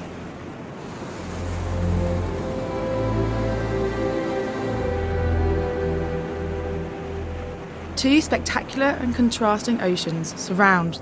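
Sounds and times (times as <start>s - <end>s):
waves breaking: 0.0s - 11.0s
low background music: 0.8s - 11.0s.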